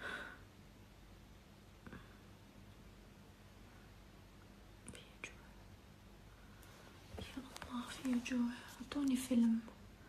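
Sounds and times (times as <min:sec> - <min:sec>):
faint steady hum: 0:00.0 - 0:10.0
woman whispering: 0:04.8 - 0:05.6, 0:07.2 - 0:09.8.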